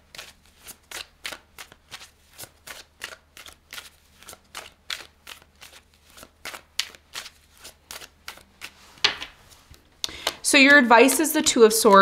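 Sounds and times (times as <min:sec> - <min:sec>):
cards being shuffled: 0:00.1 - 0:12.0.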